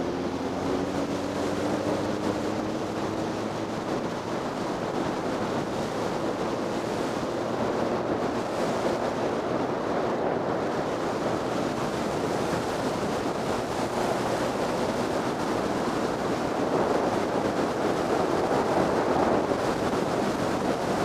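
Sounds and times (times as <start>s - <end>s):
wind rushing on microphone: 0.0s - 21.0s.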